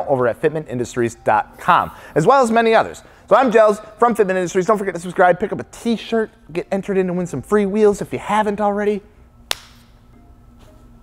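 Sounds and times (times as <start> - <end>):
faint background music: 0.0 - 11.0
sharp snap: 9.5 - 10.0.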